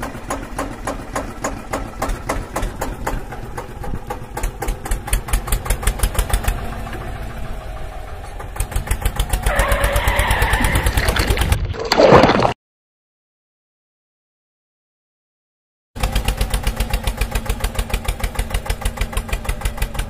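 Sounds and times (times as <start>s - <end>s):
tractor engine chugging: 0.0s - 11.6s, 16.0s - 20.0s
rushing splashy noise: 10.3s - 12.6s.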